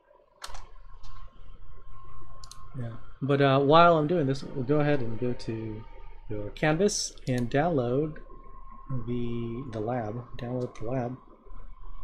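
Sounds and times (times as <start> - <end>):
computer mouse clicks: 0.4 - 1.2, 2.4 - 2.6
low steady hum: 0.4 - 12.0.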